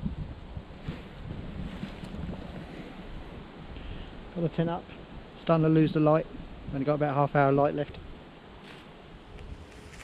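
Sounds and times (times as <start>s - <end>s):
wind rumble on microphone: 0.0s - 8.2s, 9.1s - 10.0s
faint outdoor hiss: 0.0s - 10.0s.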